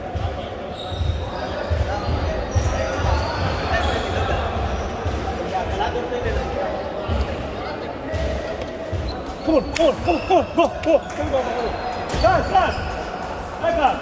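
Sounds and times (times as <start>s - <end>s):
shoes squeaking on hall floor: 0.2s - 7.4s, 8.0s - 14.0s.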